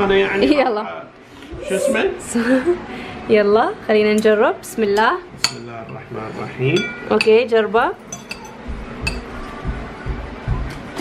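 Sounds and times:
cutlery clinking on plate: 0:06.7 - 0:07.4, 0:08.1 - 0:09.4
soft low thuds: 0:08.6 - 0:11.0.

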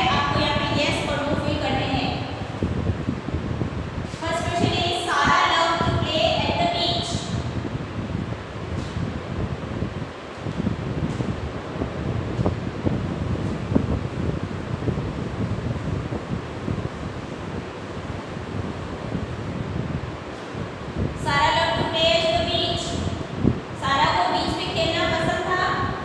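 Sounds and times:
steady low rumbling: 0:00.0 - 0:26.0.

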